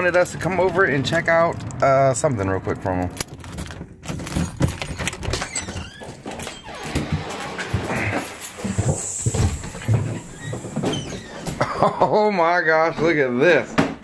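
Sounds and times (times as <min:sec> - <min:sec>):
footsteps: 0:03.4 - 0:11.6.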